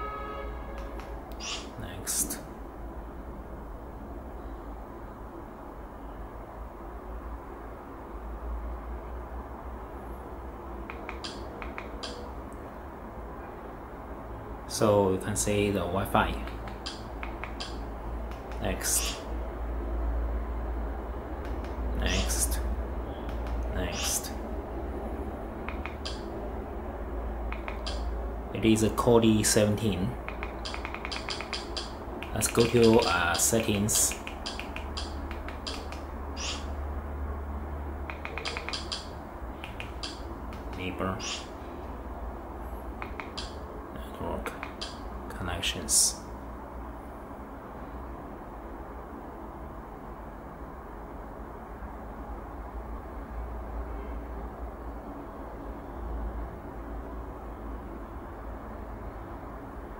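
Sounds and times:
steady low hum: 0:00.0 - 0:59.9
remote control button clicks: 0:10.9 - 0:12.2, 0:16.4 - 0:18.6, 0:25.7 - 0:26.2, 0:27.5 - 0:28.1, 0:30.2 - 0:33.2, 0:34.1 - 0:36.6, 0:38.1 - 0:40.8, 0:43.0 - 0:43.6.

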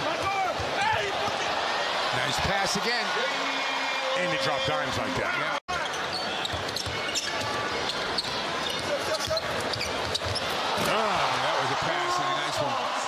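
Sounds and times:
arena crowd noise: 0:00.0 - 0:13.0
basketball bouncing on court: 0:06.4 - 0:10.6.

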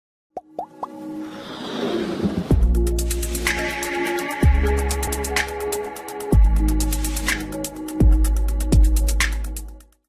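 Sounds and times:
swelling whoosh: 0:01.1 - 0:03.4.

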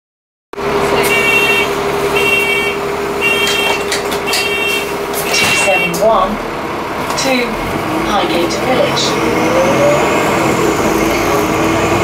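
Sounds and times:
bus engine idling: 0:00.6 - 0:12.0
bus door warning beeps: 0:01.0 - 0:06.3.

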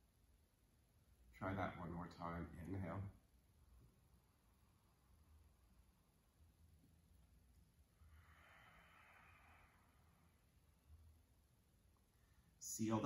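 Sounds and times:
slow breath through nose: 0:08.0 - 0:10.5.

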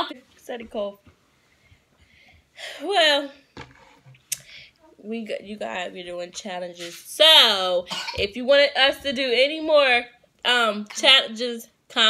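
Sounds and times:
woman speaking: 0:00.0 - 0:01.0, 0:02.6 - 0:03.4, 0:05.0 - 0:12.0
faint breathy hiss: 0:04.2 - 0:05.0.

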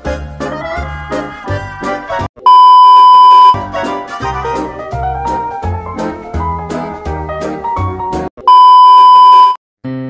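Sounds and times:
background music: 0:00.0 - 0:02.3, 0:03.5 - 0:08.3
high censor bleep: 0:02.5 - 0:03.6, 0:08.5 - 0:09.6.

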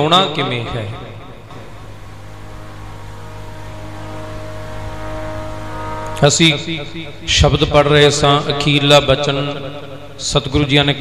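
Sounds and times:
harmonium drone chord: 0:00.0 - 0:11.0.

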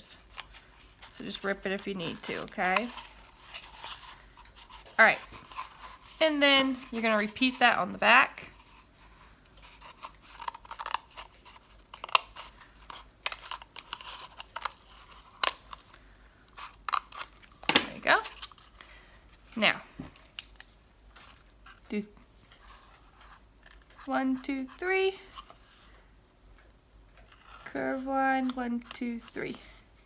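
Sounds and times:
cardboard rustling: 0:00.2 - 0:15.9.

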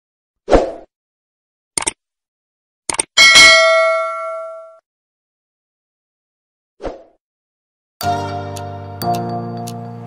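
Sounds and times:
bright bell ding: 0:03.2 - 0:04.8.

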